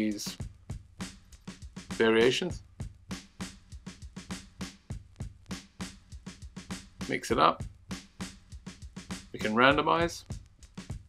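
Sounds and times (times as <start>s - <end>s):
breakbeat drum loop: 0.0s - 11.0s.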